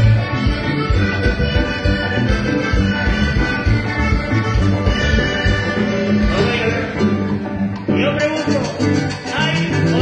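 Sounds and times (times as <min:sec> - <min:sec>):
live band playing latin dance music: 0:00.0 - 0:10.0.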